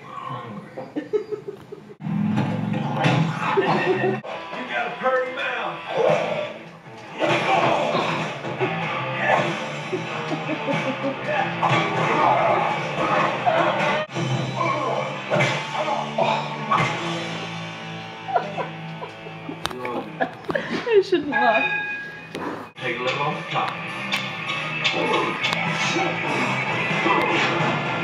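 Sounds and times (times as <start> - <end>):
film music from television: 0.0 - 28.0
speech: 22.8 - 23.8.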